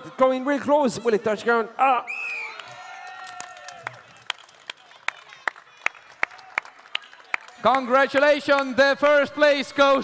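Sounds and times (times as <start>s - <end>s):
hands clapping: 2.5s - 9.1s.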